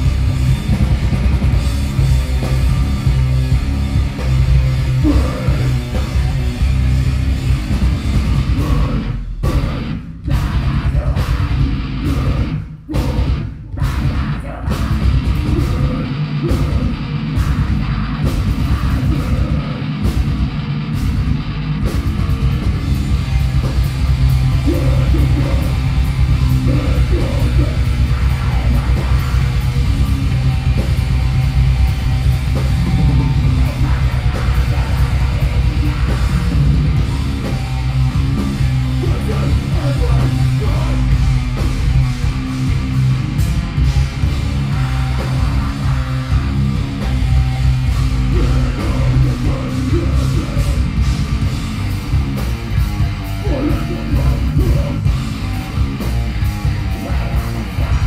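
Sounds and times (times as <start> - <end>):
heavy metal band playing: 0.0 - 58.0.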